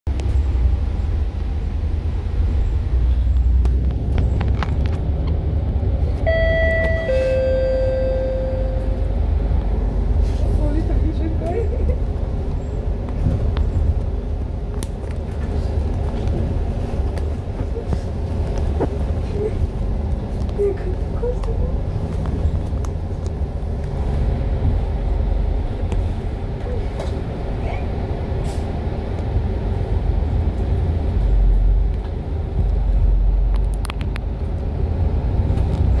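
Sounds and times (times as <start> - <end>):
bus engine and road rumble: 0.0 - 36.0
electronic two-note chime: 6.3 - 9.0.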